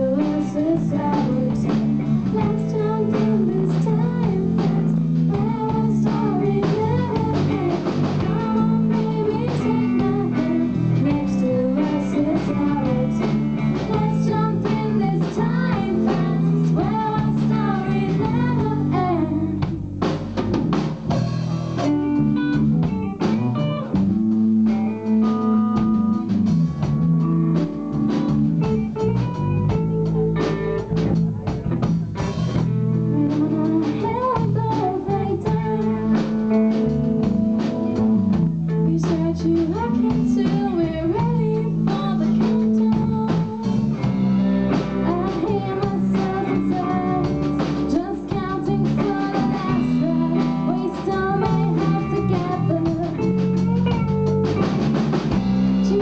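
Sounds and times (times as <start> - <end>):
female vocals: 0.0 - 19.8, 33.1 - 36.5, 38.7 - 54.2, 55.7 - 56.0
drum kit: 0.0 - 56.0
electric guitars: 0.0 - 56.0.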